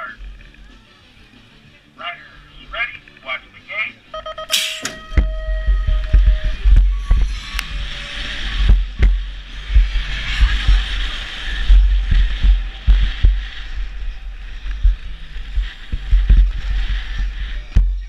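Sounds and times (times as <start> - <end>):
start-gate tone: 4.2 - 7.4
start gate clacking down: 4.5 - 5.3
wind buffeting on microphone: 5.0 - 18.0
bike tyre rumble: 5.2 - 18.0.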